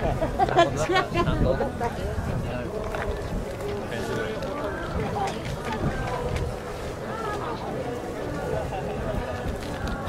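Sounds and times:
people talking faintly: 0.0s - 10.0s
wind rumbling on microphone: 0.0s - 10.0s.

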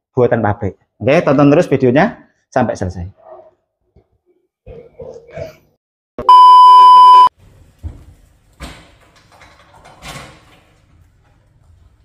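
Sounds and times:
loud electronic beep: 6.2s - 7.3s.

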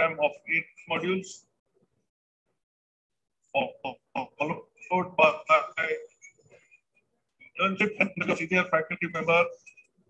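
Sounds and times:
man talking: 0.0s - 1.5s, 3.6s - 6.2s, 7.5s - 9.7s.

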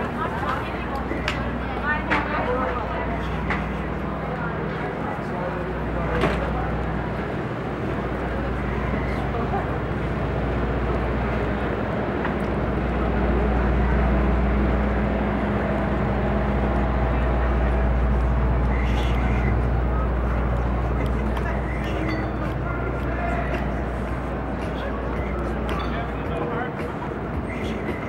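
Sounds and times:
crowd chatter: 0.0s - 28.0s
low engine hum: 0.0s - 28.0s.

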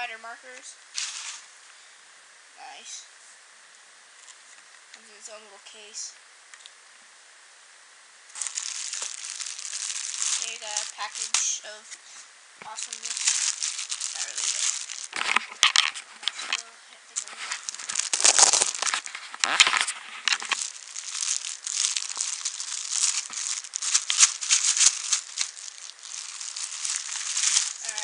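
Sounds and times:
plastic packaging crinkling: 1.0s - 1.5s, 8.3s - 28.0s.

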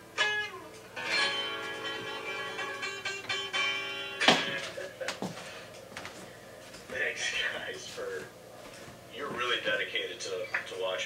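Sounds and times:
guitar chord ringing: 0.0s - 5.0s.

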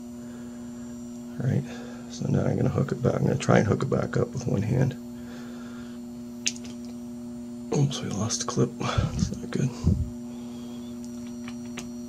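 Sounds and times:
electrical hum: 0.0s - 12.0s.

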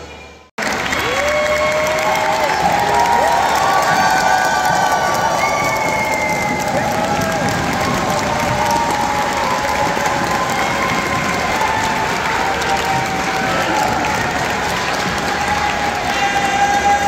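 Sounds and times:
voices calling out and cheering: 0.0s - 17.0s
audience applauding: 0.6s - 17.0s.

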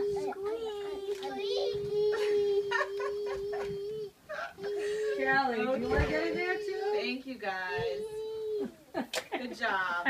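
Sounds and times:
young children babbling and calling: 0.0s - 9.1s.

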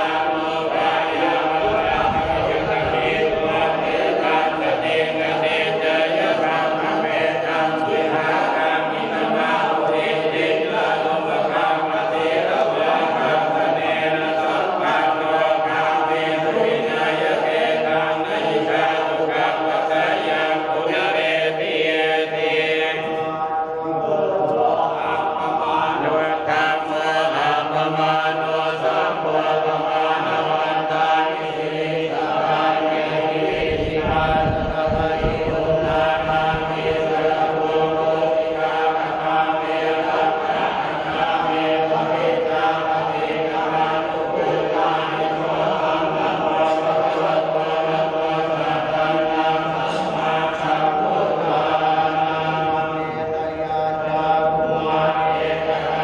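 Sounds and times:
monks chanting in unison: 0.0s - 56.0s.

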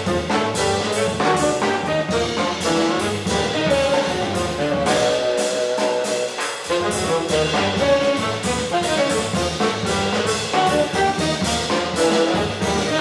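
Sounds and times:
double bass: 0.0s - 13.0s
drums: 0.0s - 13.0s
piano: 0.0s - 13.0s
tenor saxophone melody: 0.0s - 13.0s.

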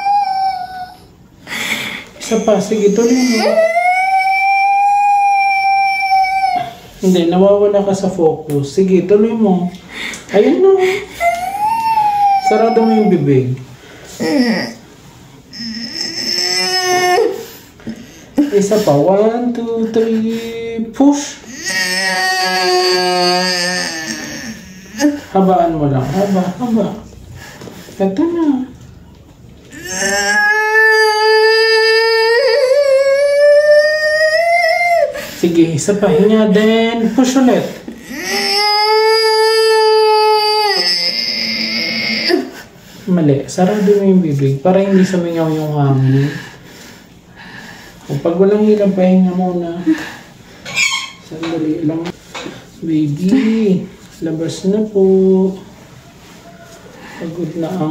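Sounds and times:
woman crying out in labour: 11.2s - 13.3s.

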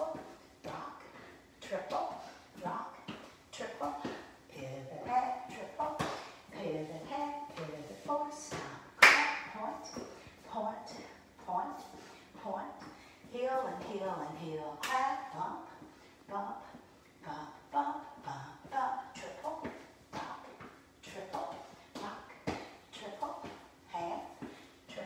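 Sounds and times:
loud sharp clap: 9.0s - 9.4s.

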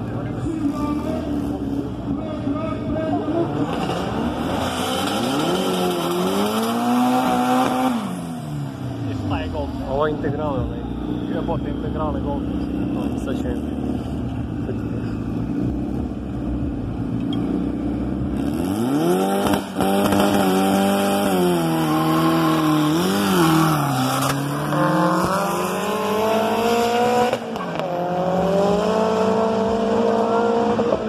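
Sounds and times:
drag racing engines revving: 0.0s - 31.0s.

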